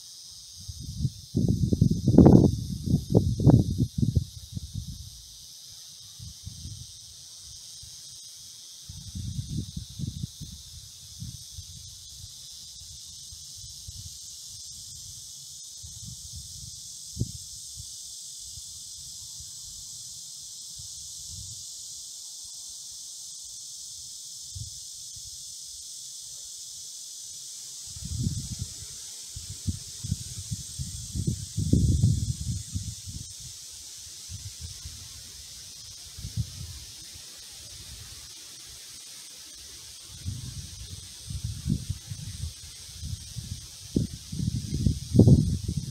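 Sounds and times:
insect chorus hissing: 0.0 - 45.9
low rumbling wind gusts: 0.7 - 5.1, 29.6 - 33.2.

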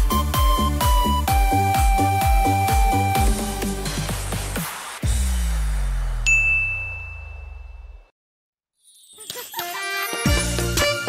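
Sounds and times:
low tone sliding downward: 5.2 - 8.1
bright ringing ding: 6.2 - 8.1.

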